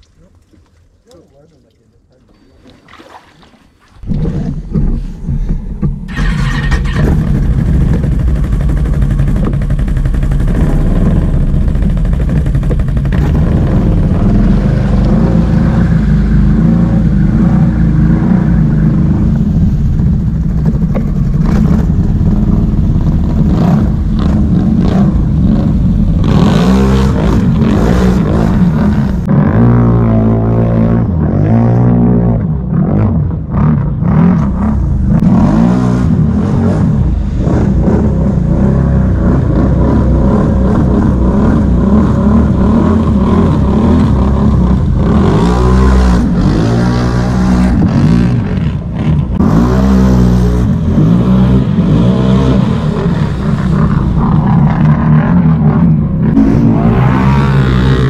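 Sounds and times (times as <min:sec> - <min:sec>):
water splashing: 0:00.0 - 0:05.2
atv engine revving: 0:06.1 - 0:58.0.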